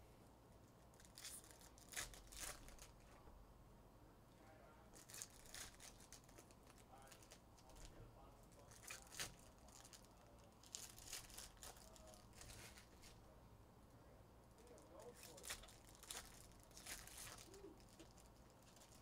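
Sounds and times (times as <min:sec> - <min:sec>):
foil wrappers tearing and crinkling: 0:01.0 - 0:03.1, 0:05.0 - 0:07.9, 0:08.5 - 0:13.1, 0:14.6 - 0:19.0.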